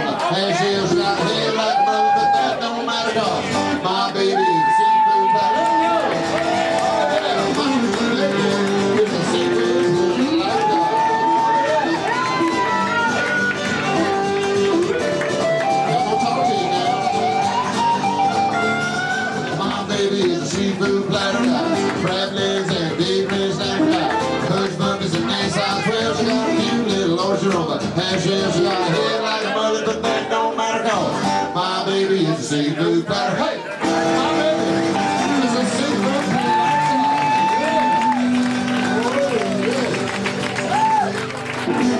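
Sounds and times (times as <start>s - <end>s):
man singing: 0.0s - 12.9s, 19.3s - 39.1s, 41.7s - 41.9s
acoustic guitar: 0.0s - 41.9s
bass guitar: 0.0s - 41.9s
crowd noise: 0.0s - 41.9s
electric guitar lead notes: 5.3s - 29.1s, 33.8s - 41.9s.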